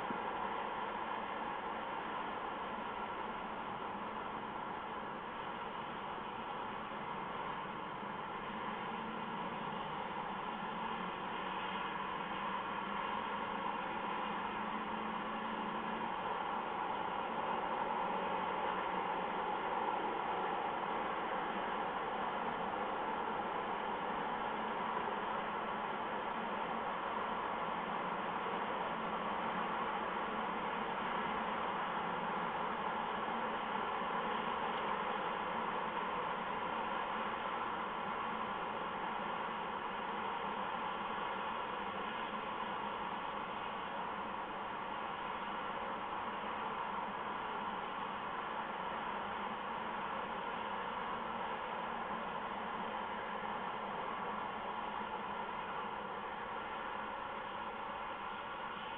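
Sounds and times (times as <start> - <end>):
steady hiss-like noise: 0.0 - 58.9.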